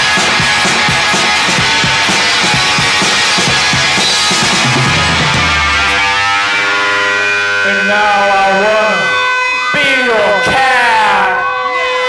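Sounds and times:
drums: 0.0s - 11.4s
ringing electric guitar note: 0.0s - 12.0s
singer wailing into microphone: 7.6s - 12.0s.

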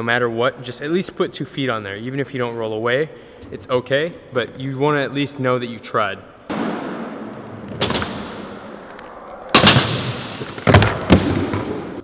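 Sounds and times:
skateboard wheels rolling: 7.4s - 12.0s
skateboard slapping and clattering: 9.5s - 12.0s.

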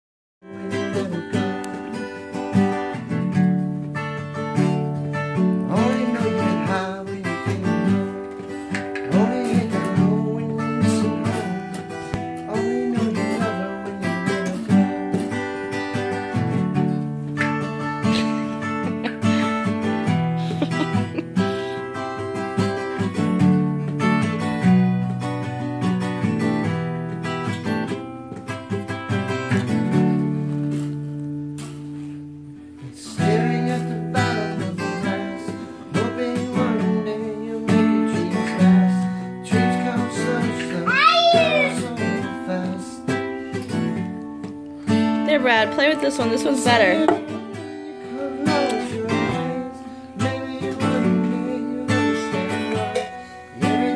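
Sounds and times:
acoustic guitar strumming chords: 0.4s - 53.9s.

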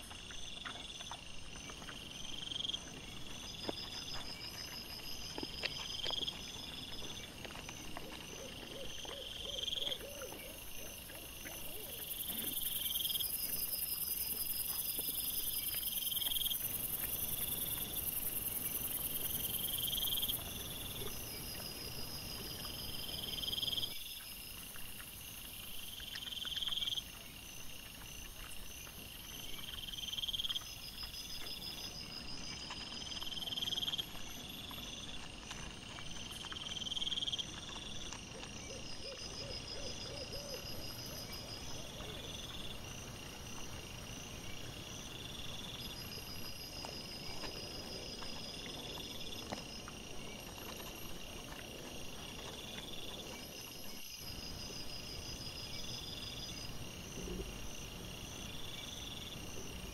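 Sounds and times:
insects calling: 0.0s - 59.9s.

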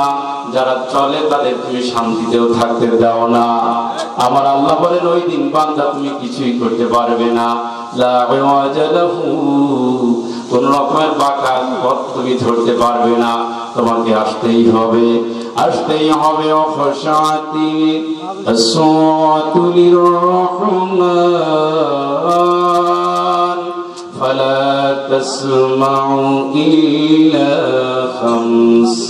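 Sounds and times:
man chanting into a microphone: 0.0s - 29.0s.

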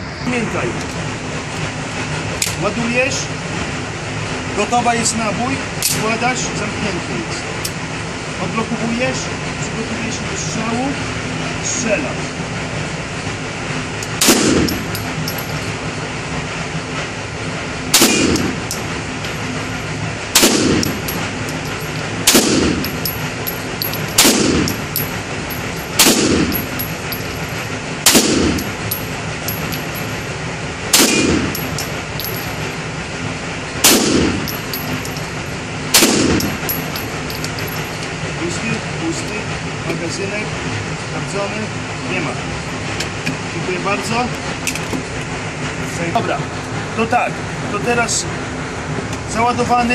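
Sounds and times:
pistol shots with echo: 18.0s - 18.5s, 20.4s - 21.2s, 22.3s - 23.2s, 23.8s - 25.0s, 26.0s - 26.6s, 28.1s - 28.8s, 30.9s - 32.4s, 33.8s - 35.2s, 36.0s - 37.1s.

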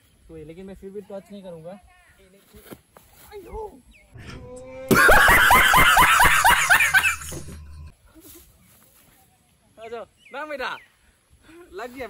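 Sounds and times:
man laughing loudly: 4.8s - 7.9s.

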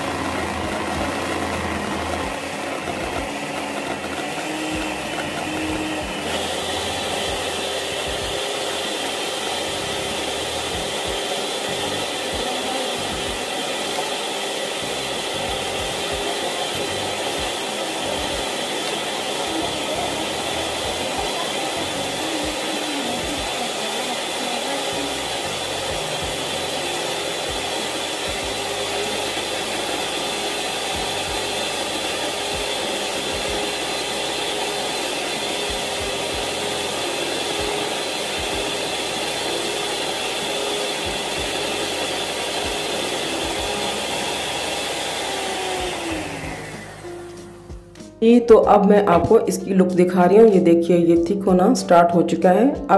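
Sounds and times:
electric hand mixer whining: 0.0s - 52.9s.

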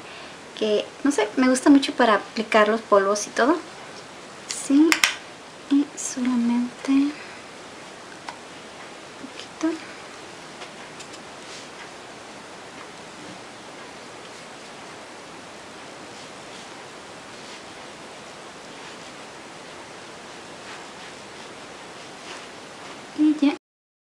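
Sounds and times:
recording hiss: 0.0s - 23.6s
powder brush swishing: 10.6s - 23.4s.

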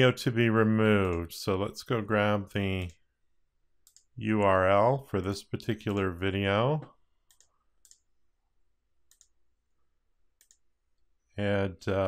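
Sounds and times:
mouse and keyboard clicks: 9.1s - 9.3s, 10.4s - 10.6s.

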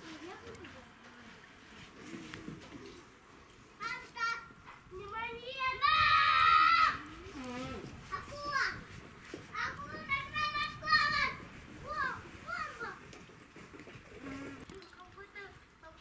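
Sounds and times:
children shouting: 5.4s - 7.1s.

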